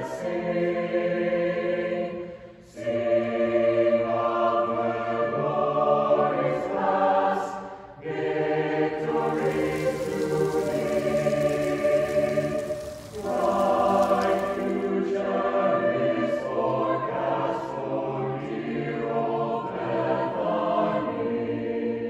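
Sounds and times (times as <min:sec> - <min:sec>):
choir singing sustained chords: 0:00.0 - 0:22.0.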